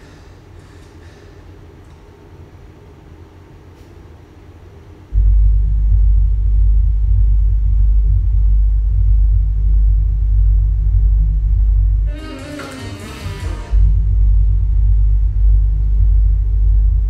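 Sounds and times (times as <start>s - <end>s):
deep rumbling drone: 5.1s - 17.0s.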